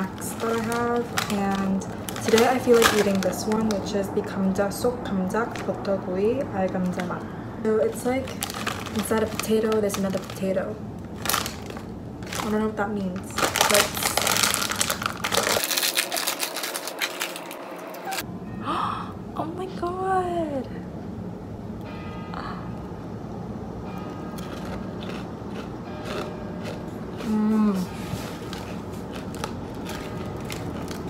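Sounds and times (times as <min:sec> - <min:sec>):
plastic snack bag crinkling: 0:00.0 - 0:03.9, 0:07.9 - 0:18.2, 0:28.4 - 0:31.0
crunching of snack being eaten: 0:08.3 - 0:10.4, 0:13.3 - 0:18.2, 0:24.4 - 0:27.4, 0:28.4 - 0:31.0.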